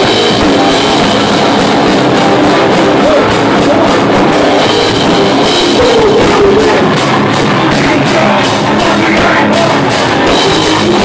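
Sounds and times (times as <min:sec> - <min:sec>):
drum kit fast beat: 0:00.0 - 0:11.0
electric guitar: 0:00.0 - 0:11.0.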